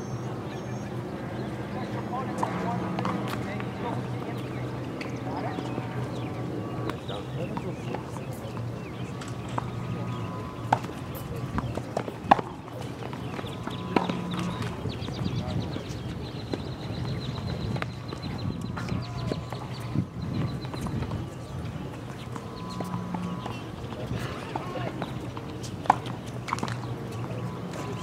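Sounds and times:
tennis racquets striking balls: 2.2s - 15.2s, 21.9s - 28.0s
tennis ball bouncing: 2.4s - 6.3s, 9.2s - 14.8s, 22.0s - 28.0s.

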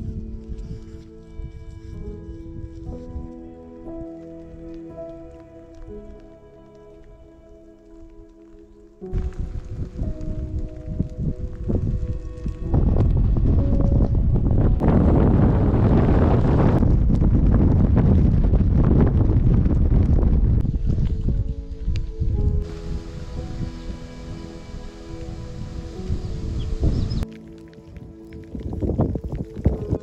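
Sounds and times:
wind buffeting microphone: 0.0s - 5.3s, 9.0s - 30.0s
soft background music: 0.0s - 19.2s, 20.1s - 30.0s.

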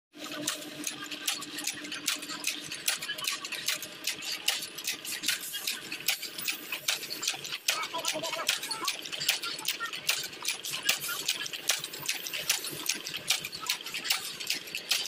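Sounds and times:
chain making machine clattering: 0.2s - 15.0s.

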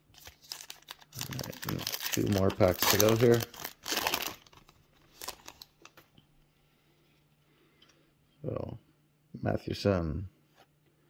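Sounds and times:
foil wrapper crinkling: 0.1s - 6.0s.

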